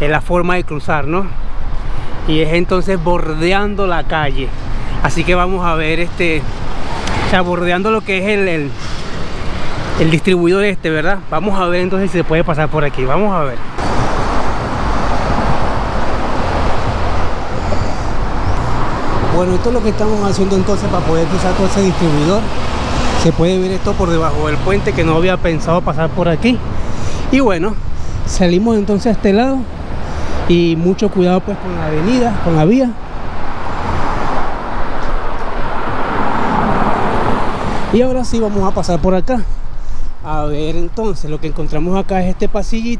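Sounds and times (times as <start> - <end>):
car driving on concrete road: 0.0 - 42.9
deep traffic rumble: 0.0 - 42.9
rush of passing vehicles: 0.0 - 42.9.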